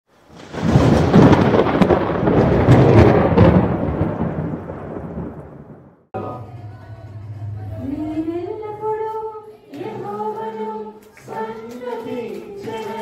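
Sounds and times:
sharp crackles: 0:00.2 - 0:05.7
rolling rumble like thunder: 0:00.3 - 0:08.4.

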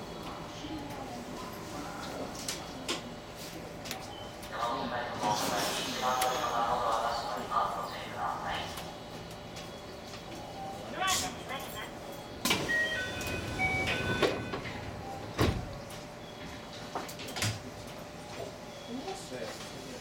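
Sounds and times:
faint voices: 0:00.0 - 0:12.4
short beeping tones: 0:12.6 - 0:15.2.

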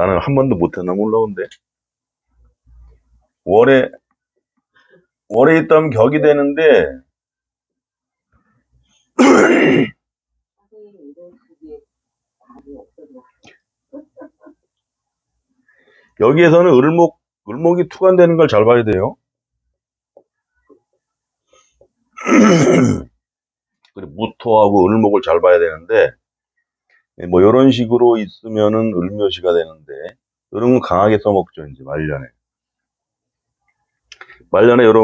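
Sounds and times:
man clearing throat: 0:09.2 - 0:10.0, 0:22.2 - 0:23.2.

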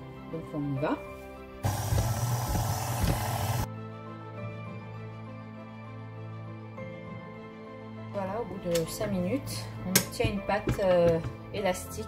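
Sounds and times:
soft background music: 0:00.0 - 0:12.0
stand mixer motor kneading dough: 0:01.6 - 0:03.7.

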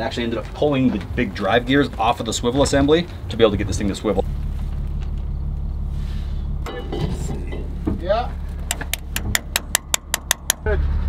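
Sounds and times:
low engine drone: 0:02.8 - 0:11.0
hammer striking steel punch: 0:08.7 - 0:10.7.

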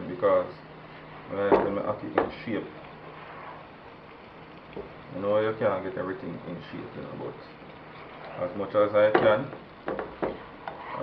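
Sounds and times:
food sizzling in pan: 0:00.8 - 0:11.0.

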